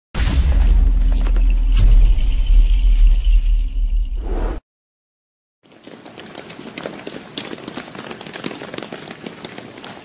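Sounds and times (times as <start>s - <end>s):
deep rumbling boom: 0.2s - 4.2s.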